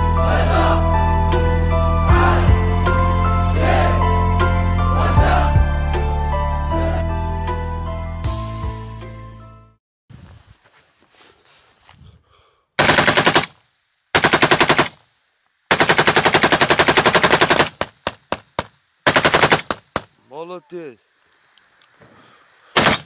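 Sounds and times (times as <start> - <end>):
machine gun firing bursts: 12.8 - 13.6, 14.2 - 15.0, 15.7 - 20.1, 22.8 - 23.0
single gunshots: 22.8 - 23.0.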